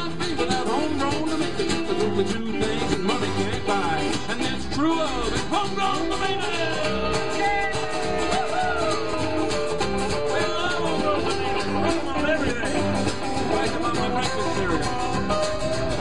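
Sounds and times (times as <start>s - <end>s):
strummed acoustic guitar: 0.0s - 16.0s
upright bass: 0.0s - 16.0s.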